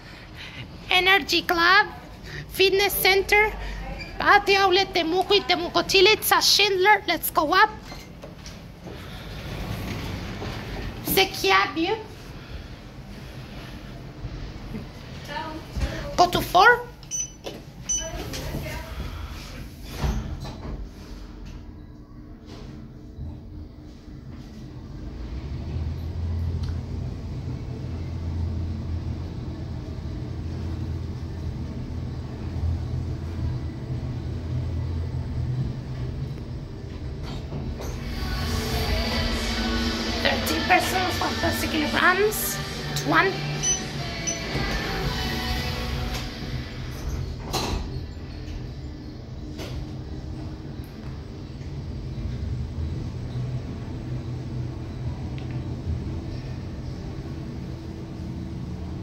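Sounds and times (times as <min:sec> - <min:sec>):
elevator low rumble: 0:00.0 - 0:59.0
elevator clicks: 0:17.0 - 0:18.4, 0:43.6 - 0:44.9
music from outside: 0:37.9 - 0:47.0.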